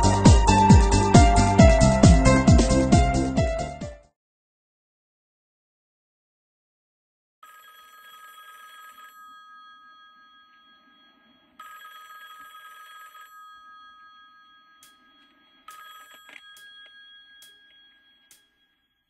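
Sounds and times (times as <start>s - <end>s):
telephone bell ringing: 7.4s - 19.0s.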